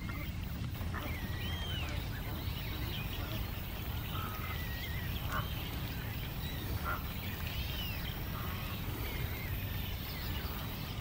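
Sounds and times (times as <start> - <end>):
birds calling: 0.0 - 11.0
faint high bird chirps and whistles: 0.0 - 11.0
steady low rumble: 0.0 - 11.0.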